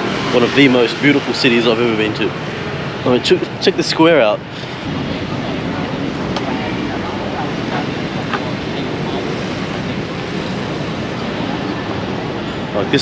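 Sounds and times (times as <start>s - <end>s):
cars driving: 0.0s - 13.0s
motorbikes: 0.0s - 13.0s.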